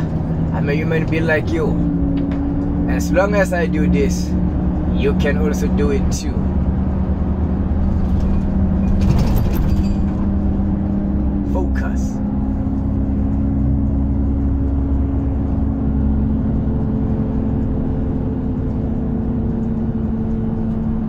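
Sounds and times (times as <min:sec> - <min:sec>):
truck diesel engine droning: 0:00.0 - 0:21.0.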